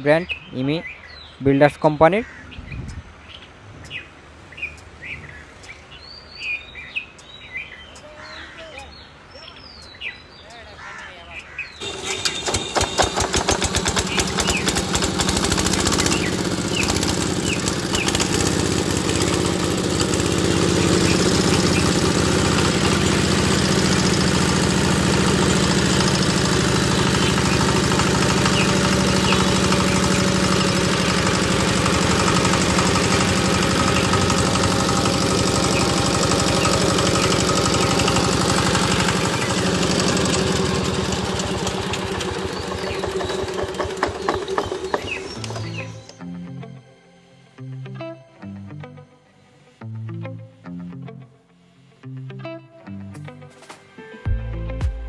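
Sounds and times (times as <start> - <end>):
diesel engine chugging: 11.8 - 46.0.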